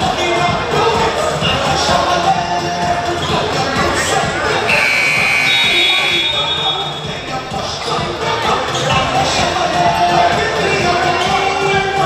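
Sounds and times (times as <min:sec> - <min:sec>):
scoreboard buzzer: 0:04.7 - 0:06.9.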